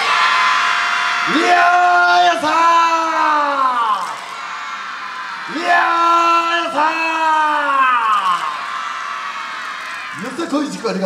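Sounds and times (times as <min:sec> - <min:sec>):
man calling into a microphone: 0:01.3 - 0:04.2, 0:05.5 - 0:08.5.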